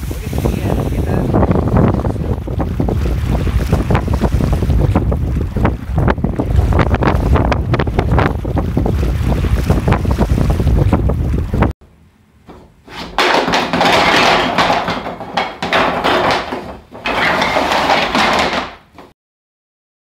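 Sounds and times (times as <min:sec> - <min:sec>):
water washing against rocks: 0:00.0 - 0:11.7
wind buffeting microphone: 0:00.0 - 0:11.8.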